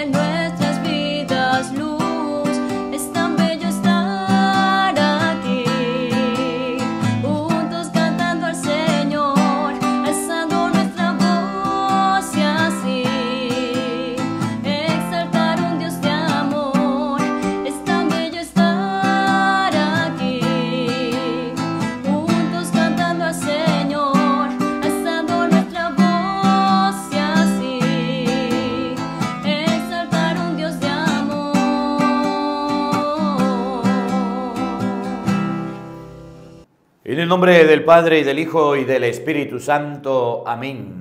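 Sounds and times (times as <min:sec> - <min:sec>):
person singing: 0:00.0 - 0:35.6
acoustic guitar: 0:00.0 - 0:36.8.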